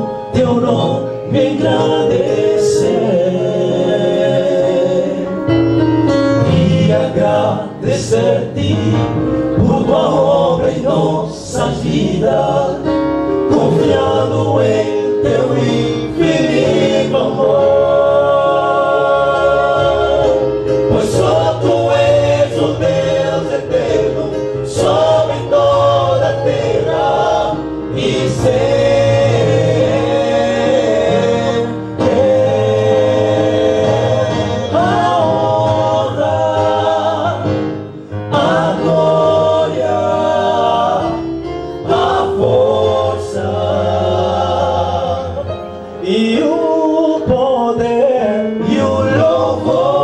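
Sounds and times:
male group singing a hymn: 0.0 - 50.0.

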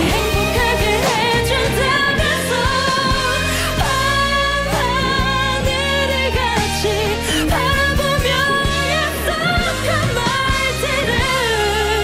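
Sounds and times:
sustained low bass notes: 0.0 - 12.0
woman singing pop ballad: 0.0 - 12.0.

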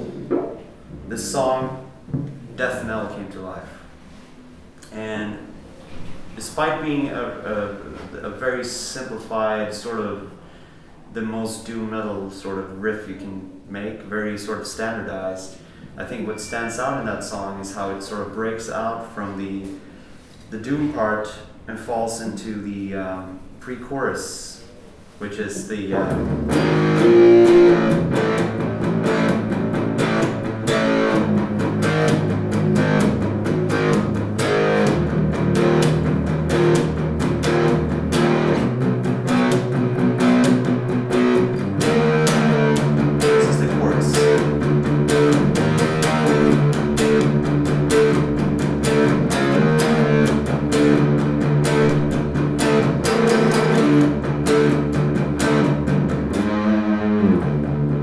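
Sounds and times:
heavy electric guitar riff: 25.9 - 58.0.

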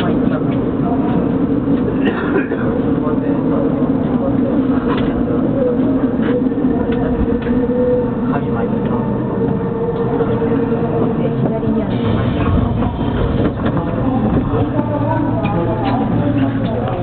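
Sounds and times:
train equipment hum: 0.0 - 17.0
voices: 0.0 - 17.0.

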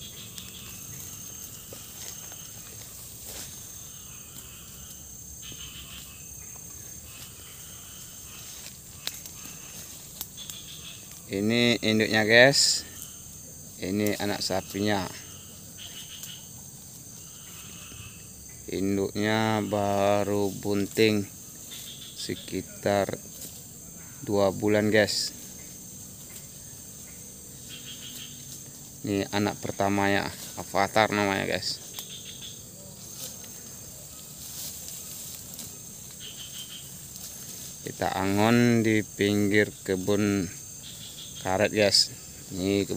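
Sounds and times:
insects chirring: 0.0 - 42.9.

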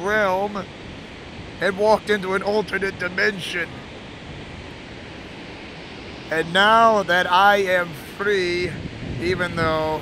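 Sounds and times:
waterfall roaring: 0.0 - 10.0.

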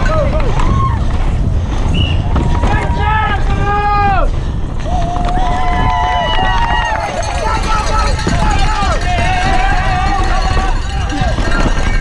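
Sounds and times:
low rumble: 0.0 - 12.0
mountain bike passing: 0.0 - 12.0
spectators cheering: 2.0 - 12.0.

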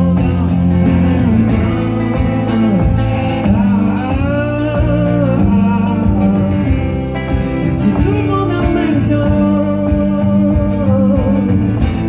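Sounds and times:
guitar strumming: 0.0 - 12.0
man singing into a microphone: 0.0 - 12.0.

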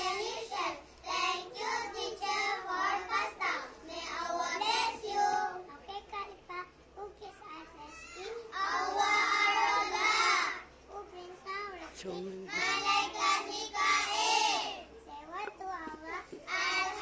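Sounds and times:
children reciting in unison: 0.0 - 11.5, 12.5 - 17.0.

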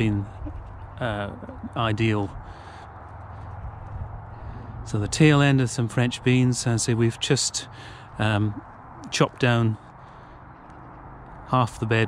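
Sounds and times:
low steady rumble: 0.0 - 7.6.

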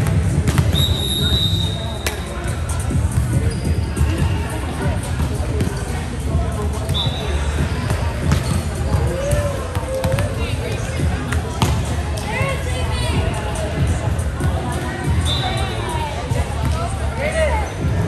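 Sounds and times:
volleyballs hit and bouncing: 0.0 - 4.3, 4.9 - 12.4
players chattering: 0.0 - 18.0
shoe squeaks: 3.3 - 4.1, 8.3 - 8.8.

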